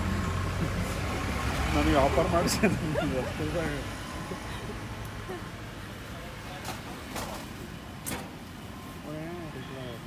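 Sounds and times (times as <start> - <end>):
voices: 1.6 - 8.2, 8.9 - 10.0.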